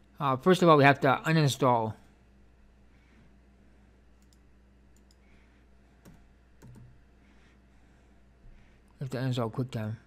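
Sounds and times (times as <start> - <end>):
low room hum: 0.0 - 10.0
keyboard keystrokes and clicks: 6.0 - 7.0.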